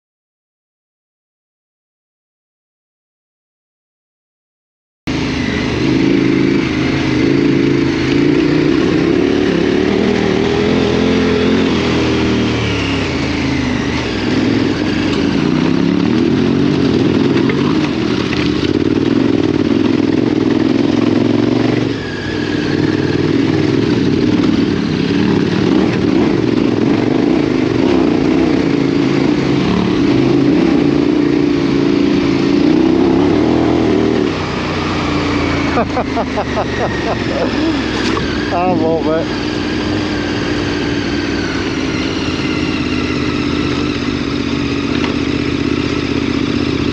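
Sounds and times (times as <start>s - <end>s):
motorcycle engine revving: 5.1s - 46.9s.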